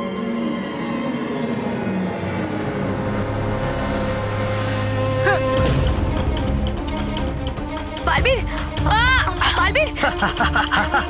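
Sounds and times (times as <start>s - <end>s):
dramatic background score: 0.0s - 11.0s.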